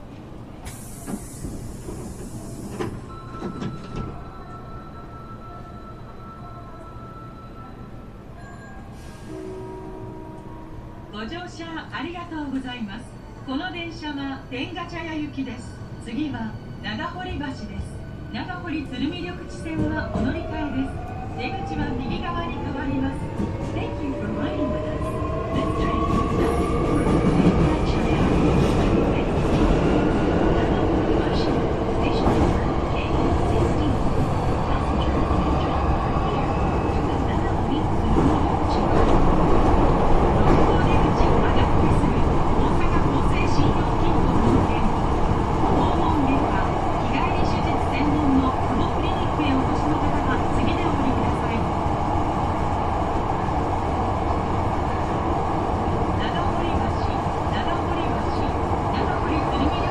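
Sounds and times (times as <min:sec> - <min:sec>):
train running rumble and rail noise: 0:00.0 - 0:59.9.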